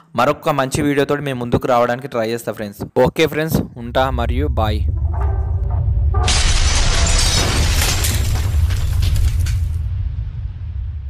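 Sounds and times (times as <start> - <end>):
deep bass tone: 3.7 - 7.4
synthetic shattering crash: 6.1 - 10.0.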